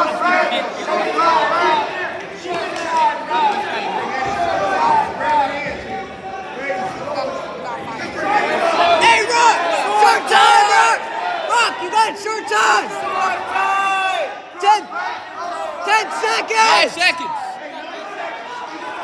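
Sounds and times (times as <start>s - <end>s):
people yelling in a gym: 0.0s - 19.0s.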